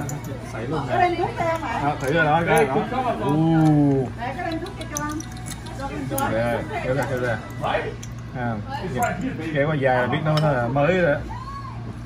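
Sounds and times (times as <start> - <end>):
shells and fork clicking on plate: 4.4 - 6.4.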